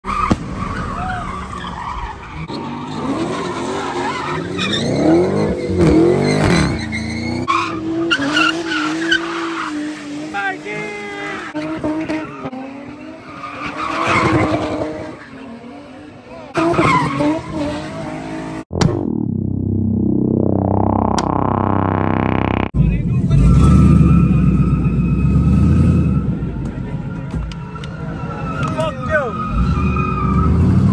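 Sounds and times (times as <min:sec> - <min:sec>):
car engines revving hard: 0:01.1 - 0:18.7, 0:21.2 - 0:30.9.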